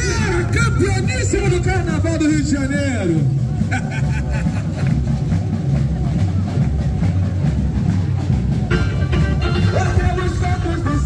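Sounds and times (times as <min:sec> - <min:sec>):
deep drum rumble: 0:00.0 - 0:11.0
sung melody: 0:06.5 - 0:11.0.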